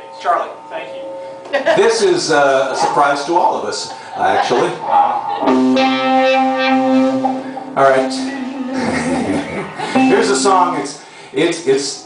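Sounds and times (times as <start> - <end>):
electric guitar sustained note: 4.4 - 11.1.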